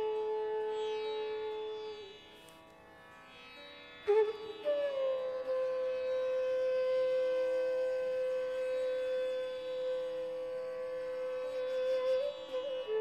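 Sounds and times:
bamboo flute long note: 0:00.0 - 0:01.9, 0:04.1 - 0:13.0.

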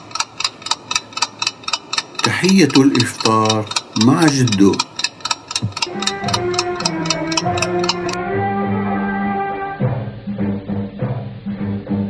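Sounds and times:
alarm clock ticking: 0:00.0 - 0:08.2
soft sustained music notes: 0:05.8 - 0:12.0.

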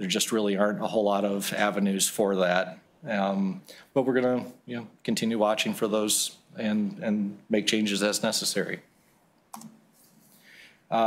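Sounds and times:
soft hiss: 0:02.8 - 0:11.0.

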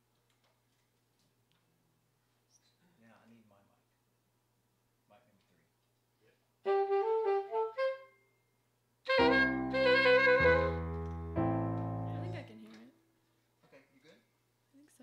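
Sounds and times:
keyboard playing saxophone notes: 0:06.7 - 0:08.1, 0:09.1 - 0:12.5.

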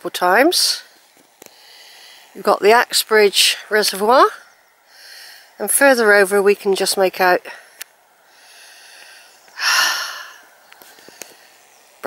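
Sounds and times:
woman breathing hard: 0:01.4 - 0:02.4, 0:04.9 - 0:05.5, 0:07.6 - 0:11.7.

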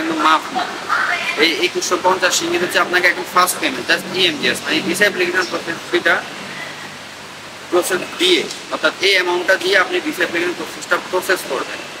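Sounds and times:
man talking: 0:00.0 - 0:00.6, 0:01.4 - 0:06.3, 0:07.7 - 0:11.9
steady background hiss: 0:00.0 - 0:12.0.

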